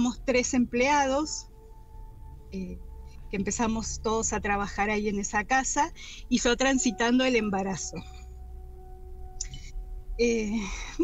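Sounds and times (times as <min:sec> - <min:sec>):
pure sustained tone: 0:00.0 - 0:11.0.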